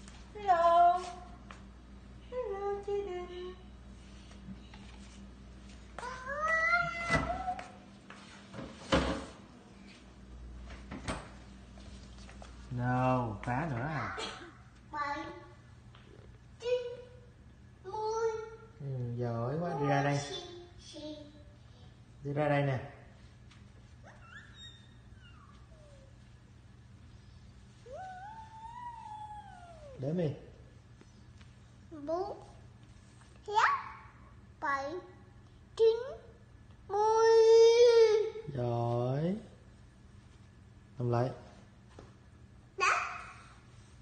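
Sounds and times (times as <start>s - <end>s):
faint squeak: 24.0s - 26.1s
baby vocal call: 27.9s - 30.0s.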